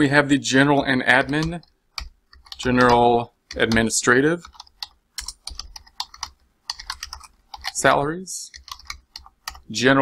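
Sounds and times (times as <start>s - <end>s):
typing on computer keyboard: 1.1s - 9.7s.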